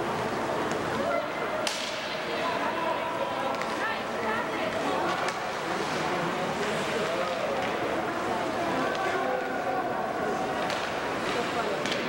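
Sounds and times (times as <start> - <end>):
rink noise and voices: 0.0 - 12.0
hockey puck impact crack: 1.6 - 2.2, 10.4 - 12.0.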